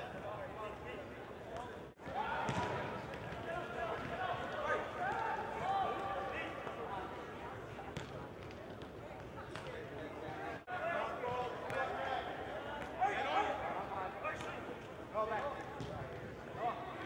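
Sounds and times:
players shouting in echoing hall: 2.0 - 7.4, 10.4 - 15.5
soccer ball kick thuds: 2.4 - 4.2, 7.9 - 9.8.

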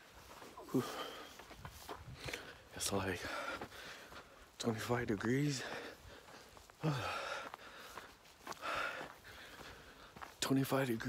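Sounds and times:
man breathing hard: 0.6 - 4.6, 5.5 - 10.4.

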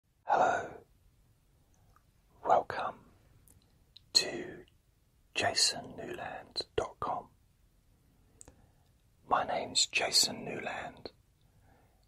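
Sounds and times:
man whispering: 0.2 - 0.9, 2.4 - 3.1, 4.0 - 7.4, 9.2 - 11.2.

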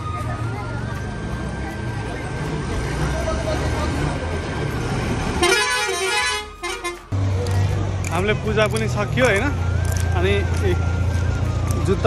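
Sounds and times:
voices: 0.0 - 5.1
road traffic rumbling: 0.0 - 12.0
vehicle horn honking: 5.4 - 7.0.

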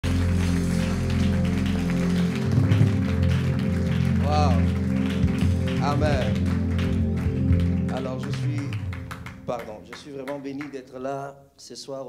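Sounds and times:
deep bass: 0.0 - 9.8
held keyboard chords: 0.0 - 10.6
congregation clapping: 0.0 - 11.1.

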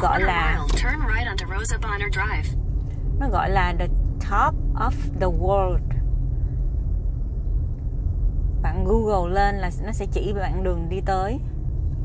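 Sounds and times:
woman talking: 0.0 - 2.5, 3.2 - 6.0, 8.6 - 11.4
car road and engine rumble: 0.0 - 12.0.

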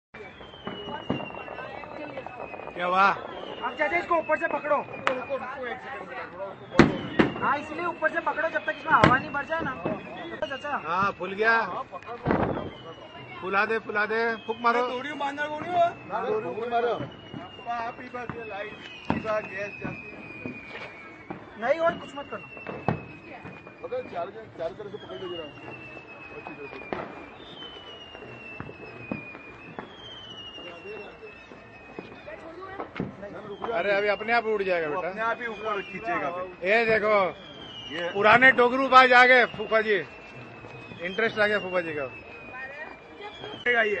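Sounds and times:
firecracker pops: 0.2 - 5.4, 6.3 - 13.3, 14.7 - 34.9, 35.7 - 42.6
high whistle falling in pitch: 0.2 - 44.0.

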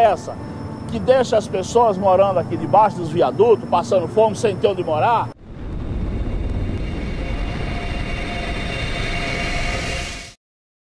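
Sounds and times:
faint whining tones: 0.0 - 10.4
low mechanical rumble: 5.4 - 10.4.

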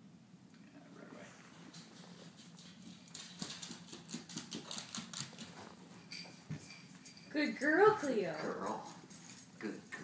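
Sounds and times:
dog claws clicking on wood floor: 1.6 - 9.7.

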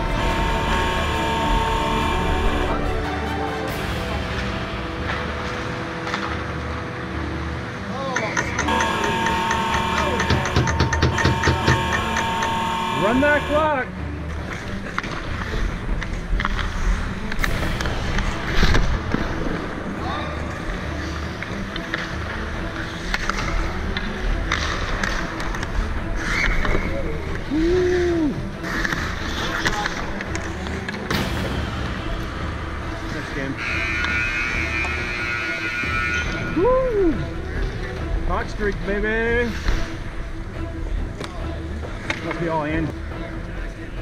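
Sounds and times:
players calling out: 8.2 - 13.8
skate blades scraping ice: 22.8 - 27.1, 28.6 - 30.9.

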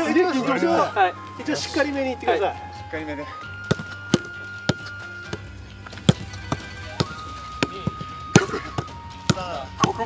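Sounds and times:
background music with held notes: 0.0 - 10.0
football being kicked: 3.5 - 10.0.

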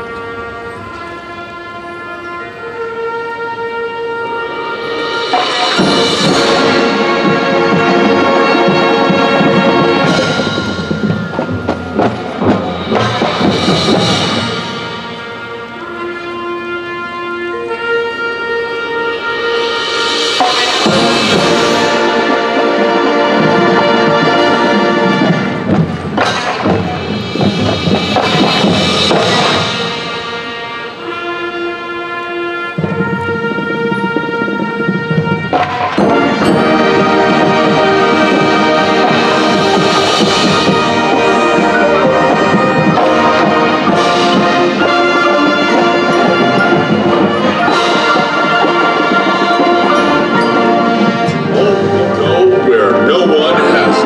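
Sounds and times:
marching band brass chords: 0.0 - 54.0
percussion hit: 4.9 - 16.0, 19.6 - 22.3, 23.4 - 31.1.

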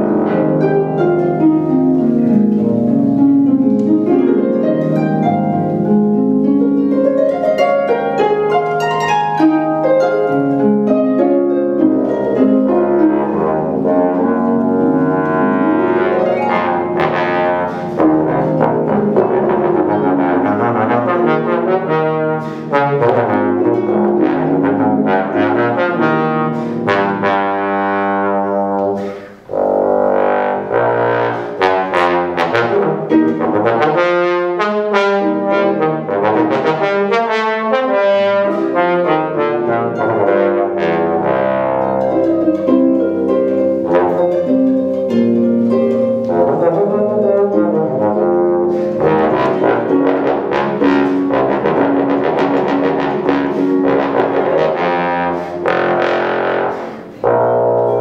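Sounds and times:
harp plucking: 0.0 - 34.6, 38.5 - 58.0
bass trombone melody: 0.0 - 58.0.

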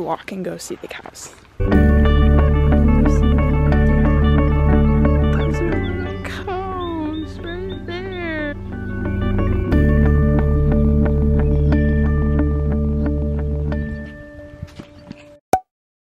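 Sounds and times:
sustained steady chords: 1.6 - 14.6.

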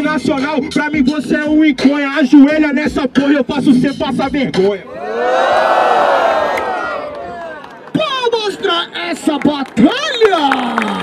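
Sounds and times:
crowd shouting: 4.9 - 7.9.

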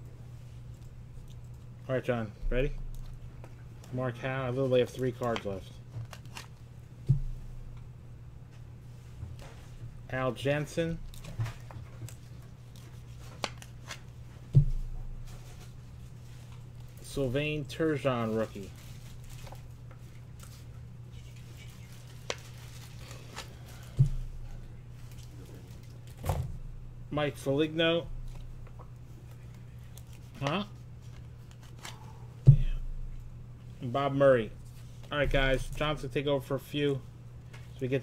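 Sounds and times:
steady low hum: 0.0 - 38.0
cards clicking and rustling: 4.8 - 6.6, 11.1 - 14.1, 29.2 - 32.0
dull thump on desk: 7.1 - 7.3
low hum: 30.8 - 36.4.

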